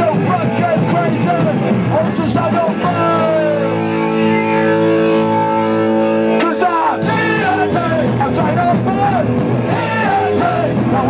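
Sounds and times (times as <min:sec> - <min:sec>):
shouted punk vocals: 0:00.0 - 0:11.0
ringing electric guitar chord: 0:03.3 - 0:08.3.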